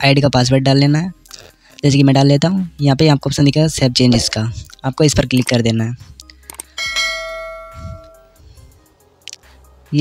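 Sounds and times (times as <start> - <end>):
bright bell ding: 6.8 - 8.4.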